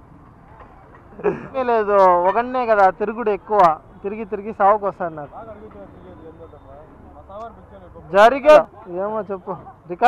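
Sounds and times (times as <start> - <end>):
men talking: 1.2 - 10.0.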